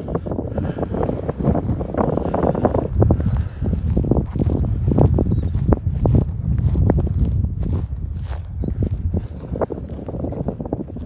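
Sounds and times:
footsteps on dry grass: 0.0 - 11.0
wind rumble on microphone: 0.0 - 11.0.

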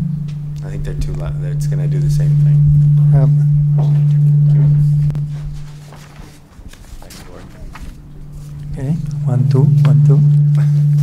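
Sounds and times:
speaker feedback low tone: 0.0 - 6.4, 7.7 - 11.0.

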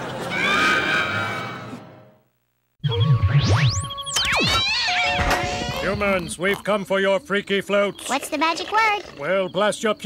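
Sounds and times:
wavering low electronic tone: 2.8 - 6.4
sitcom music: 2.8 - 6.7.

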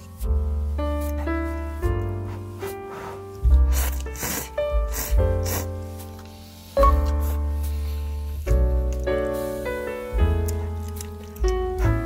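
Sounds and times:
background music: 0.0 - 12.0
noodles slurping: 2.9 - 5.9.

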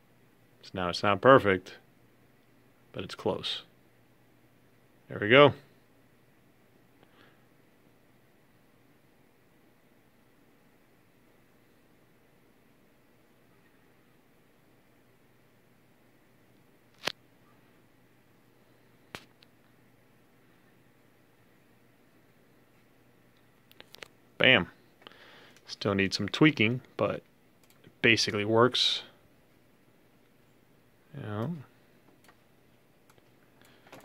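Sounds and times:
sharp clicks: 27.6 - 27.9.

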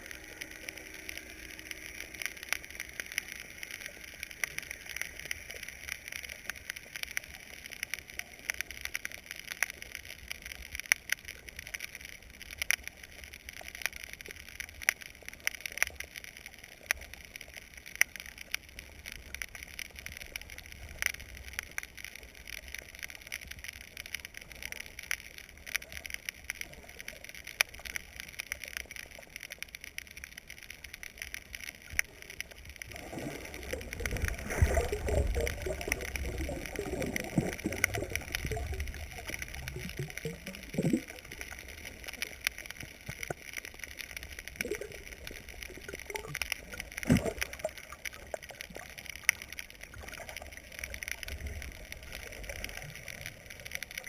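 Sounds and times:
gurgling water movement: 0.0 - 54.0
underwater crackle of clicks: 0.0 - 54.0.

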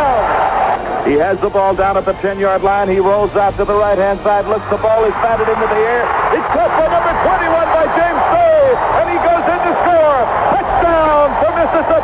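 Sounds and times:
man commentating excitedly: 0.0 - 0.4, 1.0 - 12.0
crowd noise: 0.0 - 12.0.

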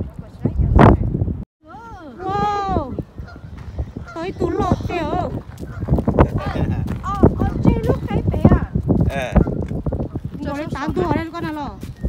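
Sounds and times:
goose honking: 2.9 - 6.6.

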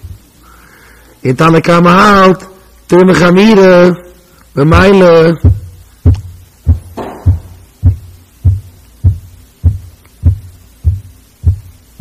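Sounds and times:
low thumps: 4.7 - 11.8.

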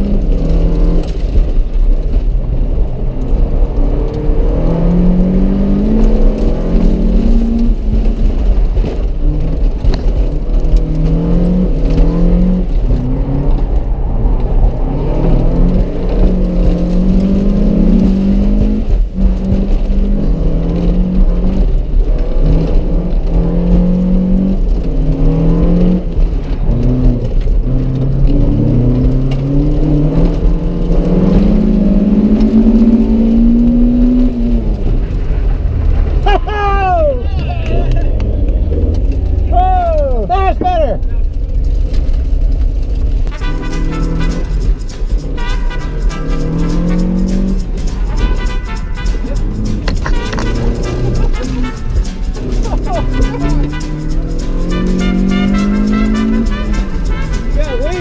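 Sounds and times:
car engine revving: 0.0 - 58.0
road and wind rumble: 0.0 - 58.0.

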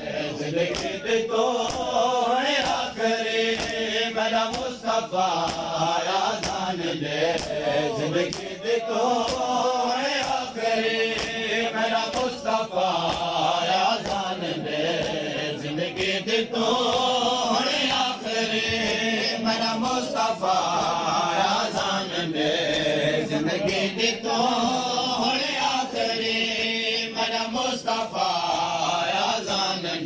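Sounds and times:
men chanting a lament: 0.0 - 30.0
men slapping their chests: 0.1 - 30.0.

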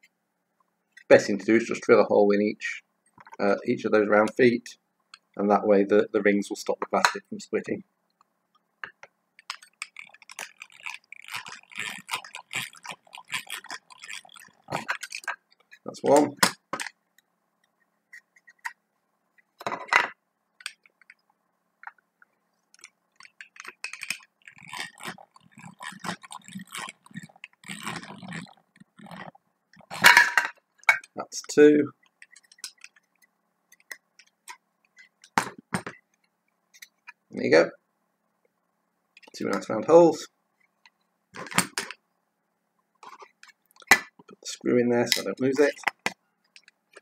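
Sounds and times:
hand drill scraping and clicking: 9.4 - 15.8, 22.8 - 30.0.

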